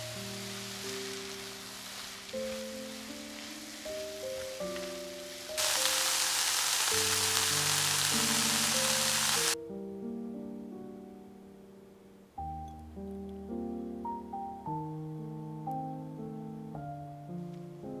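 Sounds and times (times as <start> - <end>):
vegetables sizzling in a pan: 0.0 - 9.6
background piano music: 0.0 - 18.0.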